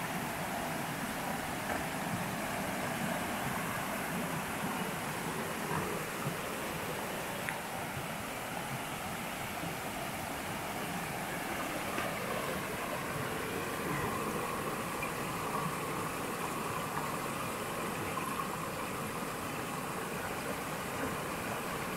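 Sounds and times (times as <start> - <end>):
river water rushing over rocks: 0.0 - 21.9.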